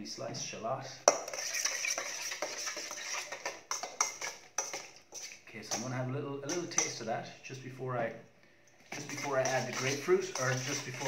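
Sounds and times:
utensil scraping against bowl: 1.1 - 5.9, 8.8 - 11.0.

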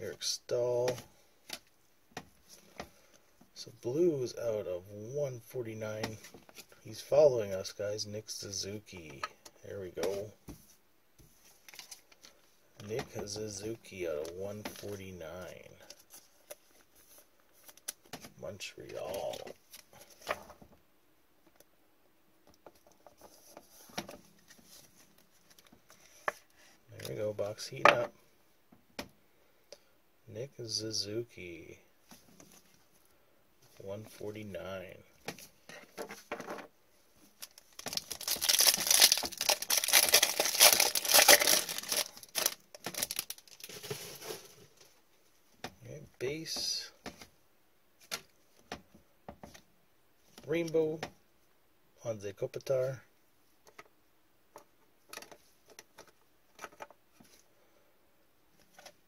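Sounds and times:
plastic rustling: 35.8 - 45.0.

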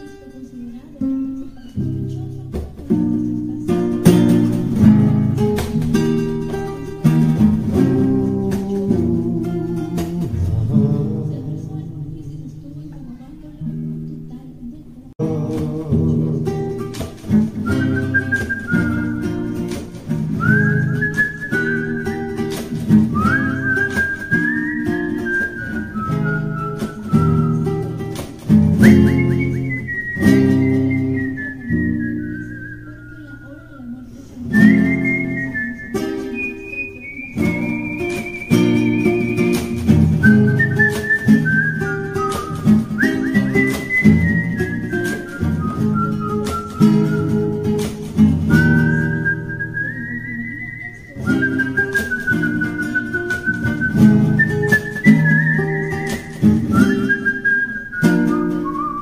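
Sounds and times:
strummed acoustic guitar: 0.0 - 59.0
man whistling a melody: 4.1 - 10.8, 16.0 - 33.6, 34.5 - 59.0.

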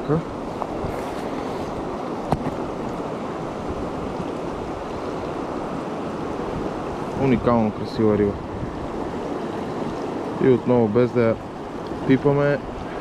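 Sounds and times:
river water rushing over stones: 0.0 - 13.0.

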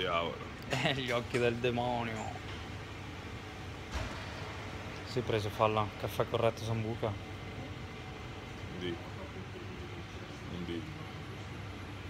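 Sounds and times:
large indoor room background noise: 0.0 - 12.0.

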